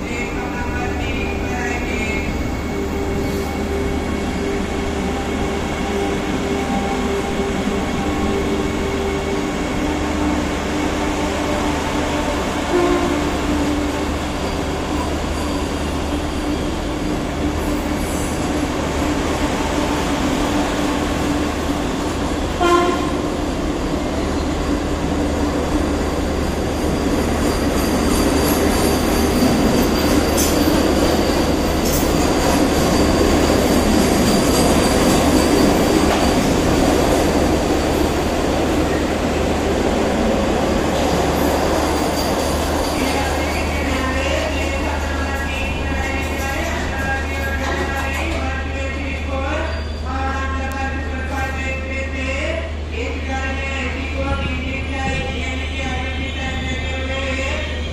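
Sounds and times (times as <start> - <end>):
train wheels rumbling on rails: 0.0 - 48.8.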